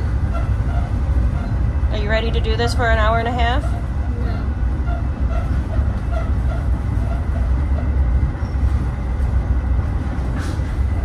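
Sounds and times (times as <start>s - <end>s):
train rumbling on track: 0.0s - 11.0s.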